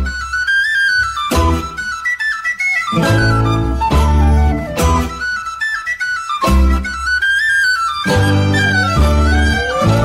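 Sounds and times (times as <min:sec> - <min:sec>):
flute-like woodwind melody: 0:00.0 - 0:10.0.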